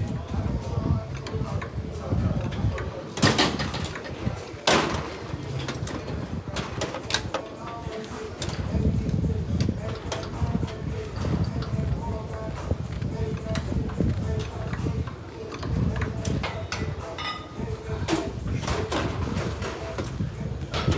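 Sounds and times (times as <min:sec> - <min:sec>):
indistinct voices: 0:00.0 - 0:20.9.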